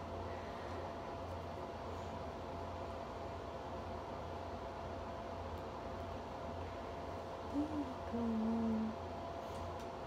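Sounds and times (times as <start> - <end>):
person humming low notes: 7.5 - 9.0.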